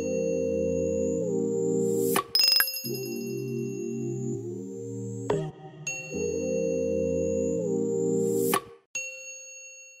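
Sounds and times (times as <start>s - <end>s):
bright bell-like ding: 2.4s - 3.7s.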